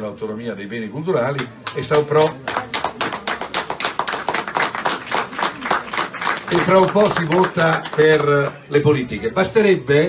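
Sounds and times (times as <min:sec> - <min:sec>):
people applauding: 0:01.4 - 0:08.8.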